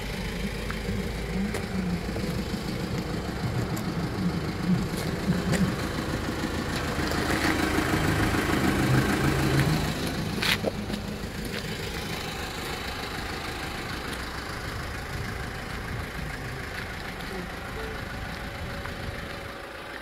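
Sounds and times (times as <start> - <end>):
truck engine idling: 0.0 - 20.0.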